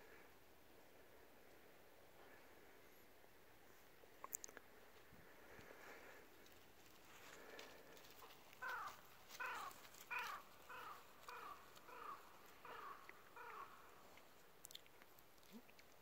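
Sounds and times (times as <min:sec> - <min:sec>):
crow cawing: 0:08.6 - 0:14.0.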